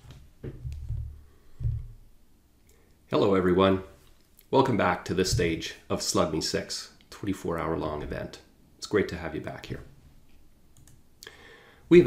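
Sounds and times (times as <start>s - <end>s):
man speaking: 3.1s - 9.9s
soft in-breath: 11.2s - 11.9s.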